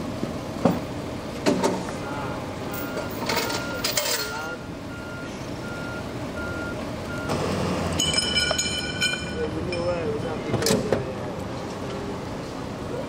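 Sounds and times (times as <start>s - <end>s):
vehicle backup alarm beeping: 1.9s - 9.4s.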